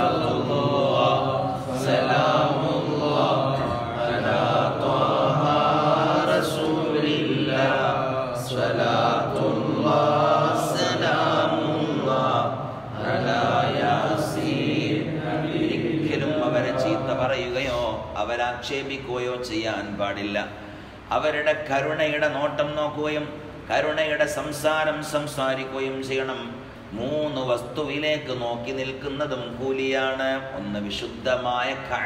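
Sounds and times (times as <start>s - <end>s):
man chanting: 0.0s - 32.0s.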